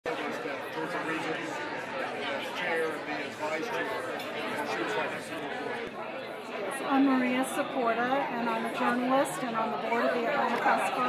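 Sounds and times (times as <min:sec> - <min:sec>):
crowd chatter: 0:00.1 - 0:11.0.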